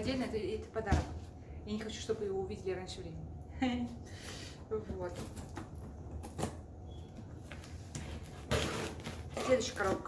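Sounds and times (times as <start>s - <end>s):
box or bag scraping: 8.2s - 10.0s.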